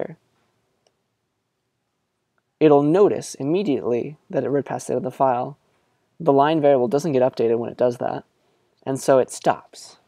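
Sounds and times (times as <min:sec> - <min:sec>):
person speaking: 0:00.0 - 0:00.3, 0:02.5 - 0:10.0.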